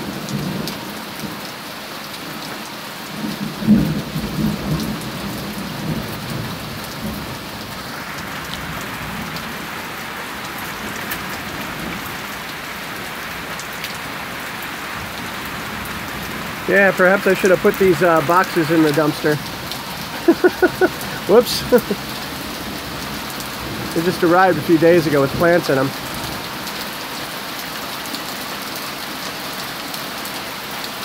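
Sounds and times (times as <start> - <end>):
heavy rain pouring: 0.0 - 31.0.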